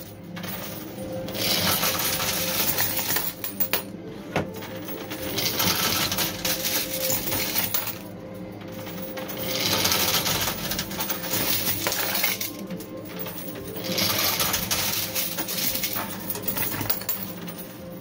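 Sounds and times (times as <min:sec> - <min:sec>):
coins clattering in coin pusher: 0:00.0 - 0:18.0.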